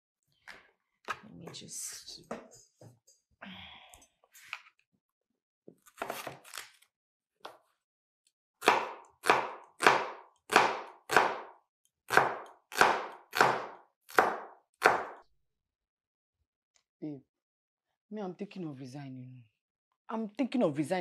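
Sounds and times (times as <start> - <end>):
knife chopping on wooden board: 8.6 - 15.2.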